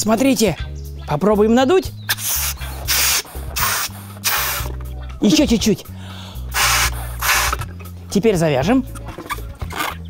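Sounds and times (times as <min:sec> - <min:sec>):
balloon being blown up: 0:02.1 - 0:04.7, 0:06.5 - 0:07.7.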